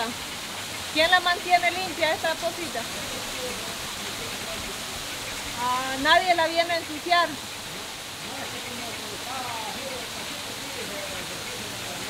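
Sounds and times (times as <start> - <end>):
stream flowing over rocks: 0.0 - 12.0
faint voices: 1.0 - 12.0.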